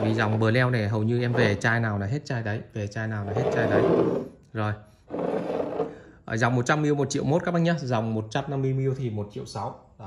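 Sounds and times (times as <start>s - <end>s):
man speaking: 0.0s - 4.8s.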